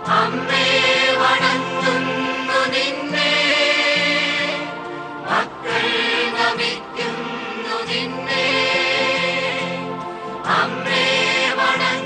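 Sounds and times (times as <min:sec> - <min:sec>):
choir singing sacred music: 0:00.0 - 0:12.0.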